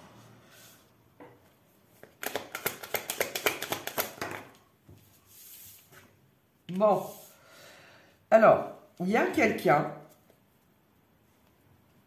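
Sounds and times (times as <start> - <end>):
cards being shuffled: 1.9 - 6.1.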